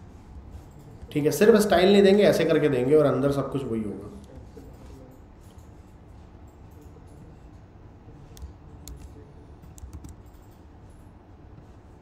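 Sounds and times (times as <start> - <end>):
computer keyboard typing: 8.4 - 11.0.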